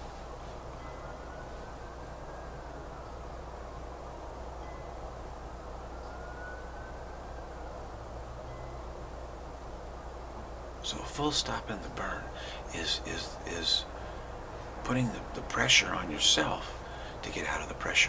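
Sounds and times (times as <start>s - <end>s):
faint high tones: 0.0s - 11.0s
low hum: 0.0s - 18.0s
steady background noise: 0.0s - 18.0s.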